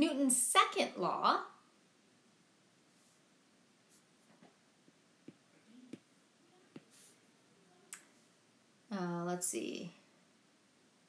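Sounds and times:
stylus tapping tablet screen: 3.9 - 7.2.

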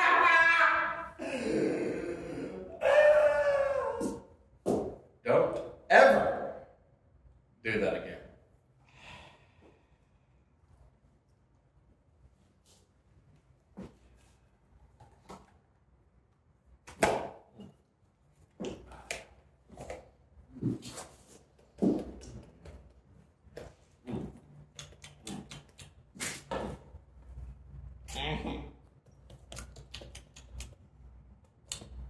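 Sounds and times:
voice holding a falling note: 0.0 - 4.2.

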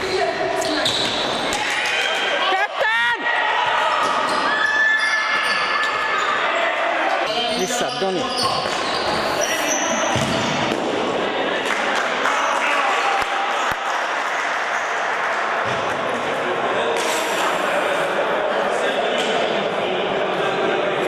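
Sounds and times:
ball kicked and bouncing: 10.1 - 10.8.

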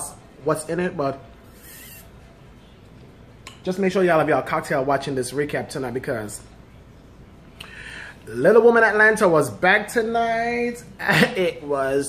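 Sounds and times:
sip through plastic straw: 1.5 - 2.1.

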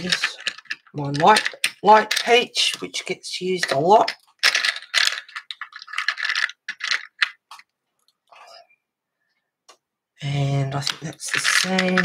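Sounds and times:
wooden pencils clicking and rattling: 0.0 - 8.2, 10.6 - 12.0.

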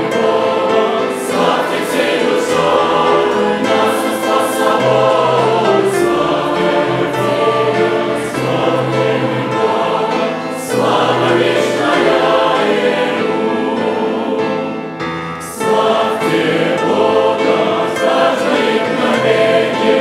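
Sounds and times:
congregation singing a hymn: 0.0 - 20.0
grand piano: 0.0 - 20.0.

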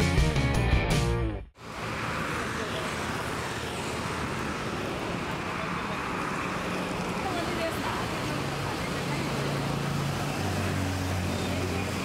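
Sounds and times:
roadside noise: 0.0 - 12.0
voices: 5.0 - 12.0.

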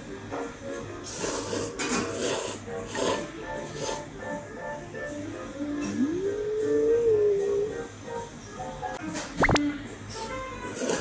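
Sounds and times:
person slurping noodles: 1.1 - 4.0.

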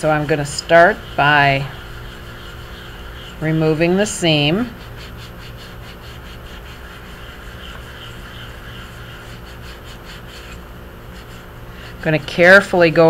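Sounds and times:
wet sponge rubbing porcelain: 0.0 - 13.0.

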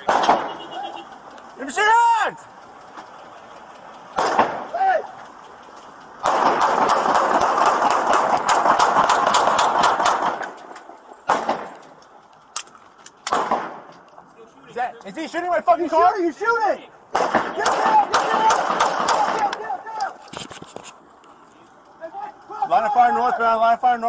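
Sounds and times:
rapid gunfire volley: 0.0 - 0.7, 4.2 - 4.6, 6.2 - 10.5, 11.3 - 11.8, 17.1 - 19.5
single loud gunshots: 11.3 - 11.7, 13.3 - 13.8, 17.1 - 19.4.

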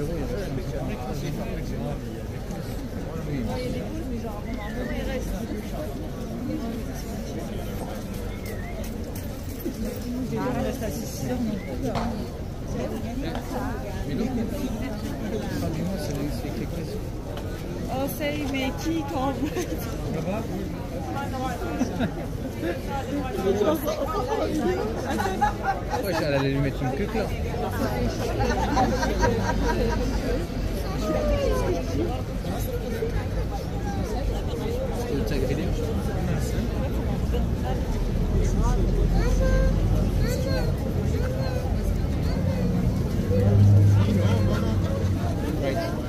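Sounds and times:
indistinct chatter: 0.0 - 46.0
people talking: 0.0 - 46.0.

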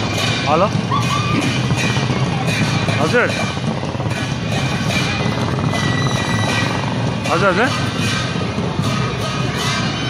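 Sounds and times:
motorcycles passing: 0.0 - 10.0
music: 0.0 - 10.0.

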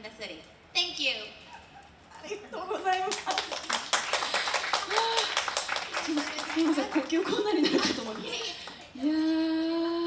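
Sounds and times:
audience clapping: 2.8 - 9.0.

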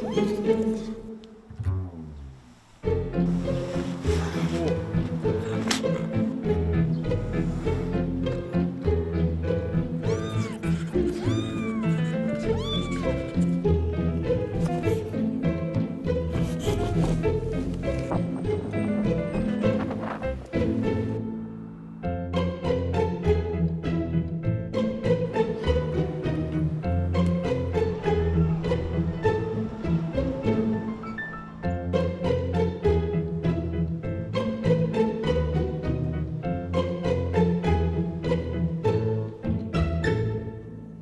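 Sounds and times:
background music: 0.0 - 41.0
kitten mewing: 10.0 - 13.6.

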